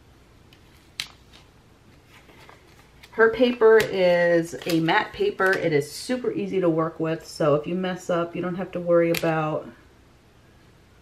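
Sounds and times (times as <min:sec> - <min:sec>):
paper crackling: 0:00.6 - 0:05.9.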